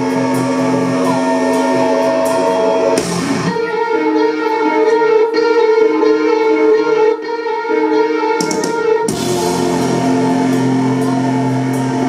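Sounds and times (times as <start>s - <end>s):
electric guitar sustained chords: 0.0s - 12.0s
metalcore band playing loud: 0.0s - 12.0s.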